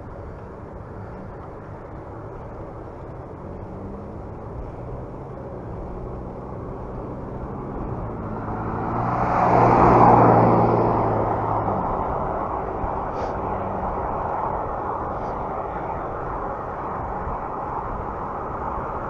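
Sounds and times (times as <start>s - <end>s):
car overtaking: 0.0s - 19.0s
wind and road noise: 0.0s - 19.0s.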